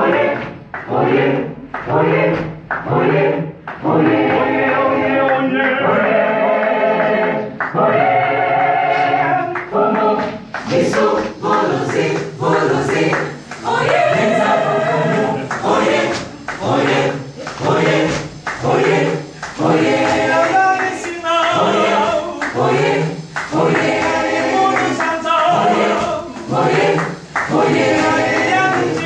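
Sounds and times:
mixed choir singing: 0.0 - 29.0.

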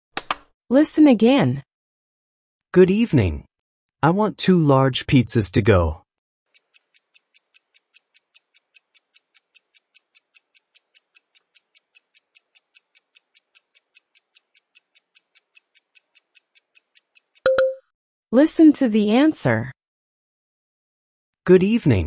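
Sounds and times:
clock ticking: 6.5 - 17.8.

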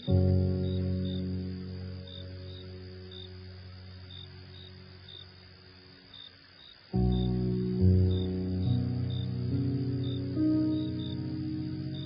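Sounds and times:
cricket chirping: 0.0 - 12.0
soft sleep music: 0.0 - 12.0.

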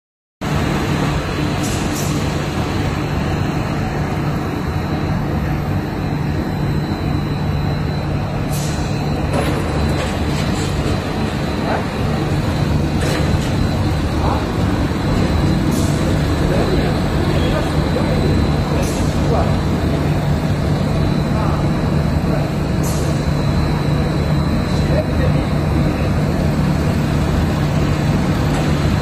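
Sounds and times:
machinery motors and fans humming: 0.4 - 29.0.

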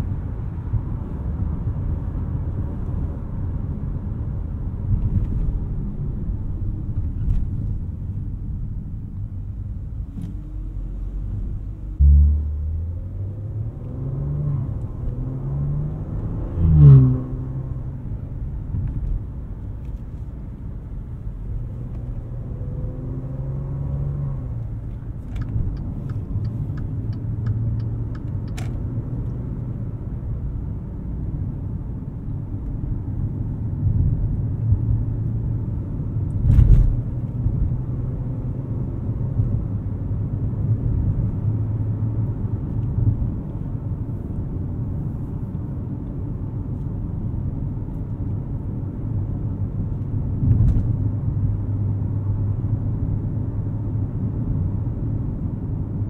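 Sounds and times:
car engine humming: 0.0 - 56.0
road and tyre rumble: 0.0 - 56.0.

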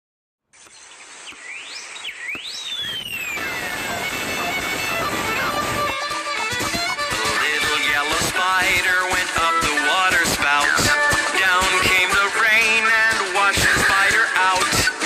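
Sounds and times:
whistle-like glides: 2.2 - 5.7
cartoon music: 3.4 - 15.0.

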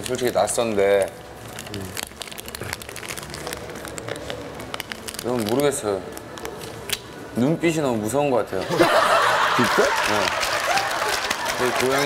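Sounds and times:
crackling and rustling clicks: 0.0 - 7.1.

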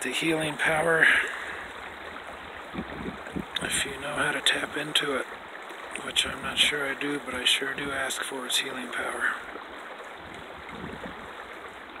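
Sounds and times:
creek running over rocks: 0.0 - 12.0.

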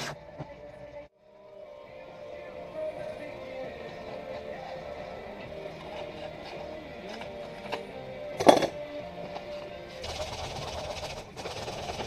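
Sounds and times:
radio music: 0.0 - 12.0.

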